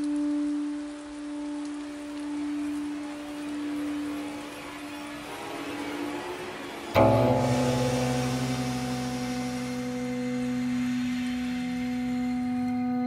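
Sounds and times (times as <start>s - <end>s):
electronic struck hit with held chord: 6.9s - 13.0s.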